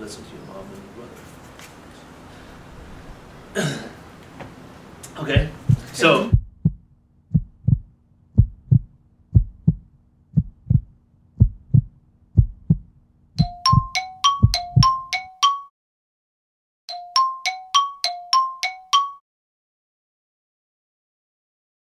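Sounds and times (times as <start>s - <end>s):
heartbeat thumps: 5.4s - 15.0s
bell-like chime notes: 13.4s - 15.7s, 16.9s - 19.2s.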